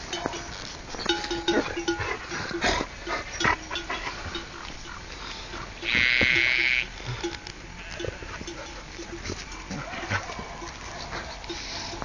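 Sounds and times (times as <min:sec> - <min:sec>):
low clinks: 0:00.0 - 0:12.0
sheep calls: 0:05.8 - 0:08.8.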